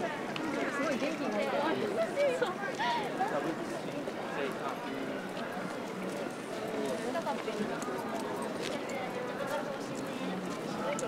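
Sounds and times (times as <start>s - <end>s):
voices of passers-by: 0.0s - 11.0s.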